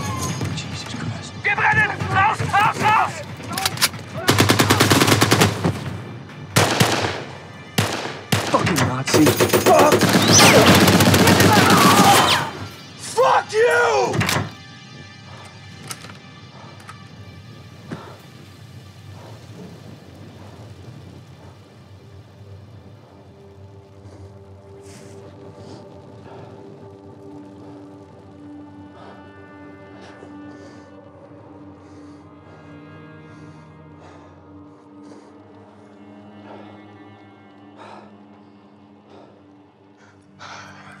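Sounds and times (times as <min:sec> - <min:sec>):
men yelling and screaming: 0:00.0 - 0:00.6, 0:01.2 - 0:04.5, 0:09.5 - 0:14.6
film score: 0:00.0 - 0:41.0
machine-gun fire: 0:04.2 - 0:06.0, 0:06.6 - 0:12.5.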